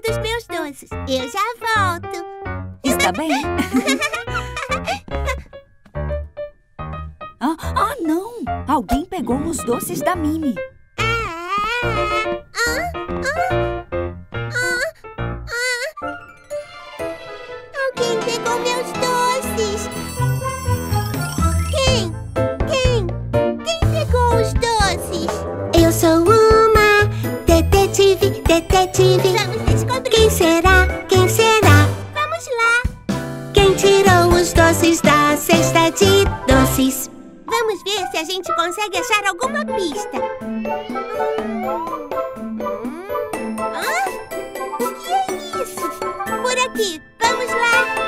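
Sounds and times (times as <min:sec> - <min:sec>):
backing music: 0:02.8 - 0:07.2, 0:08.6 - 0:10.7, 0:16.1 - 0:37.5.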